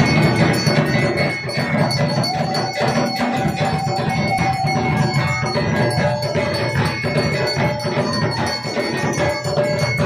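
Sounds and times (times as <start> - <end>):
fast drumming: 0.0 - 10.0
held tone: 0.0 - 10.0
metal bell ringing: 0.0 - 10.0.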